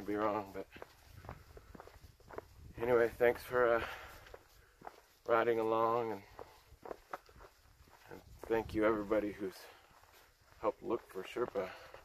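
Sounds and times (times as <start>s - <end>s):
footsteps crunching on dirt trail: 0.0s - 12.0s
person speaking: 8.0s - 9.9s, 10.5s - 12.0s.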